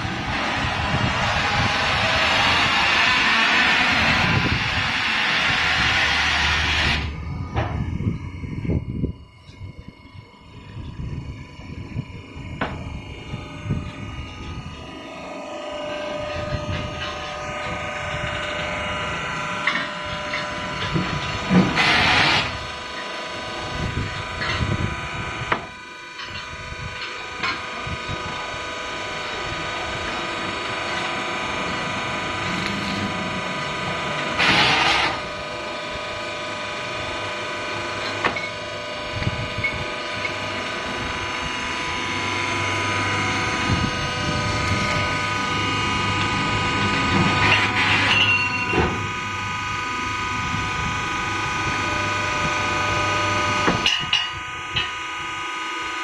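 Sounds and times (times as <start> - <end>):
machine whine: 0.0 - 56.0.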